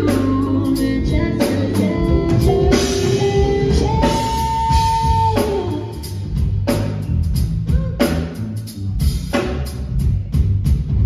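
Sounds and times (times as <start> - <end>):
electric guitar: 0.0 - 6.3
keyboards: 0.0 - 8.4
bass guitar: 0.0 - 11.0
drum kit: 0.0 - 11.0.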